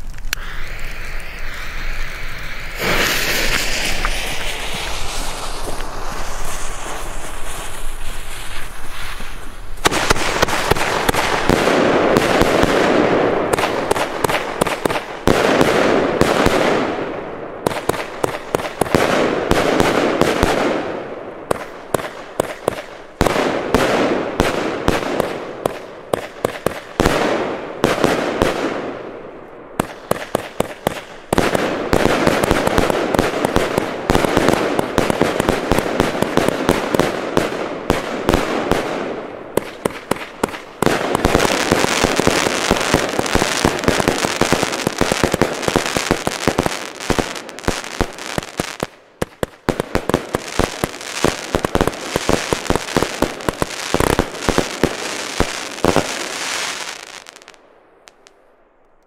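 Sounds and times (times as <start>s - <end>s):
firework shots bursting: 0.0s - 29.0s, 29.8s - 58.3s
firework crackling and popping: 0.0s - 59.0s.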